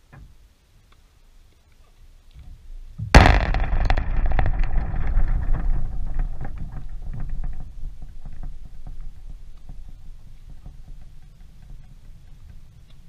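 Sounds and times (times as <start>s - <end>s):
rattling and low rumbling: 2.5s - 13.0s
loud crash: 3.0s - 9.5s.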